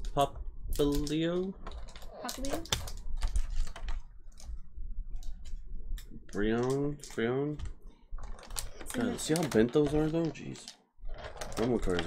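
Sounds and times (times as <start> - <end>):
cards clicking and rustling: 0.8 - 4.5, 6.2 - 12.0.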